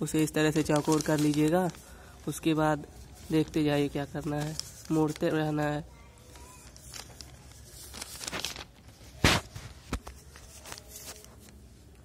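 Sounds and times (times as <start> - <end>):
plastic bag crinkling: 0.0 - 11.6.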